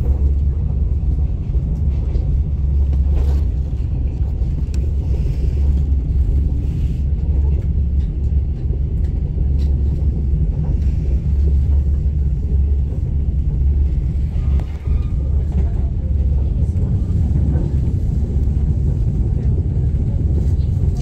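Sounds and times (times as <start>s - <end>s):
train rumble from inside carriage: 0.0s - 21.0s.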